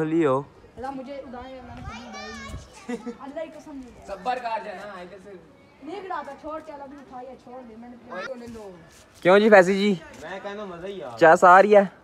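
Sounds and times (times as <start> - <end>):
children's voices: 1.7 - 3.3.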